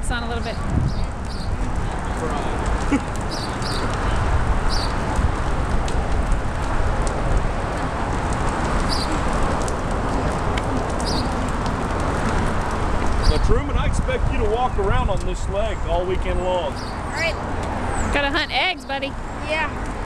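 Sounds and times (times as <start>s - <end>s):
outdoor rumble and hiss: 0.0s - 20.0s
small birds chirping: 0.3s - 5.0s, 8.8s - 9.3s, 10.9s - 11.4s, 13.1s - 13.5s, 15.6s - 19.8s.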